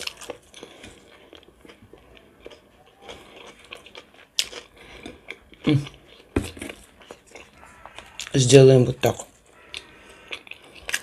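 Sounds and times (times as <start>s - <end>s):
person chewing cucumber: 0.0s - 8.4s, 9.2s - 11.0s.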